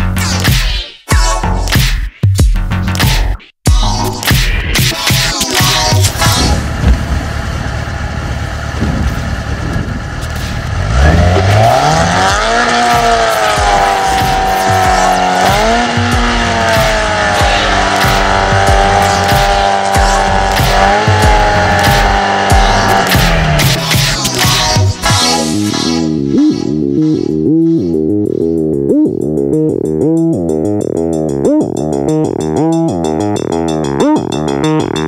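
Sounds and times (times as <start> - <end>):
motorcycle engine revving: 5.6 - 25.5, 26.4 - 35.0
tyre spinning in burnout: 8.7 - 24.7.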